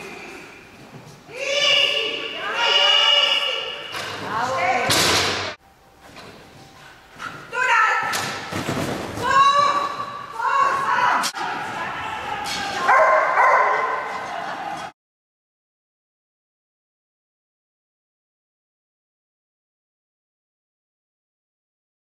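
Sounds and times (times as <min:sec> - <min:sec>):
high-pitched shouted calls echoing: 0:01.3 - 0:04.0.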